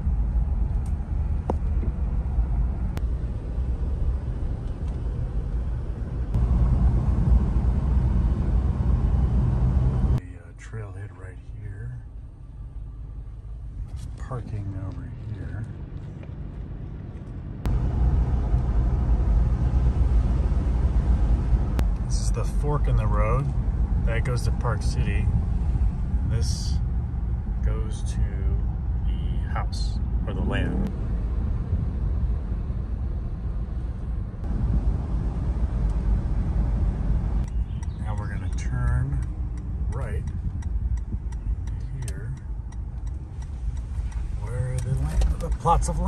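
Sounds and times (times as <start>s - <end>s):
road and engine noise inside car: 0.0s - 46.0s.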